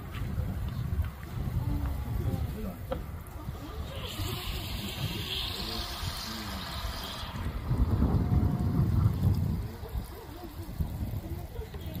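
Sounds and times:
faint voices: 0.0 - 12.0
wind rumbling on microphone: 0.0 - 12.0.

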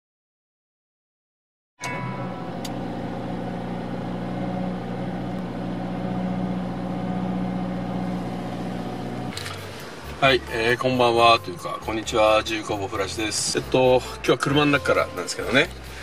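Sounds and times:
car engine idling: 1.8 - 16.0.

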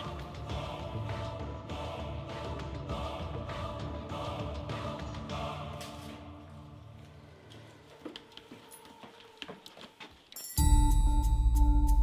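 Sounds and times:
background music: 0.0 - 12.0
faint footsteps: 6.8 - 10.6.

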